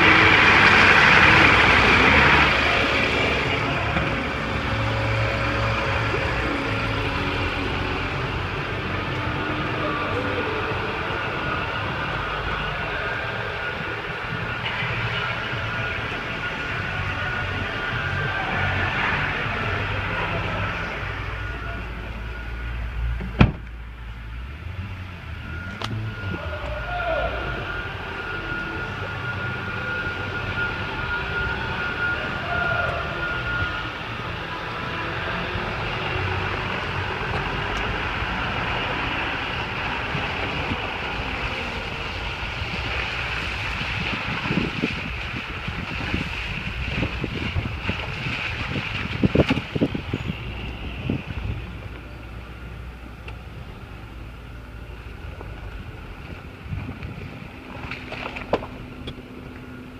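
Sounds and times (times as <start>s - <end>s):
car engine idling: 0.0s - 59.9s
car door shutting: 23.2s - 23.8s.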